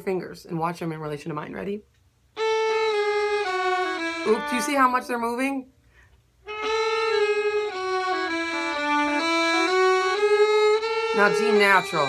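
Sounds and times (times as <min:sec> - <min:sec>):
violins bowing sustained notes: 0:02.4 - 0:05.5, 0:06.4 - 0:12.0.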